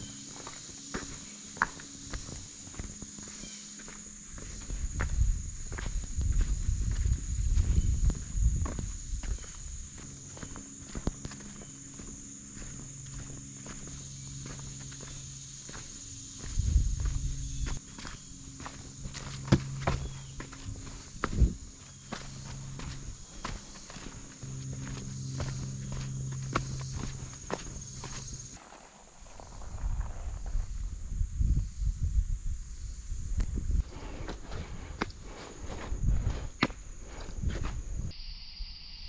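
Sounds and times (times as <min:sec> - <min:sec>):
footsteps on dirt and dry leaves: 0:00.0 - 0:30.6, 0:33.8 - 0:38.0
high-pitched whine: 0:38.0 - 0:39.0.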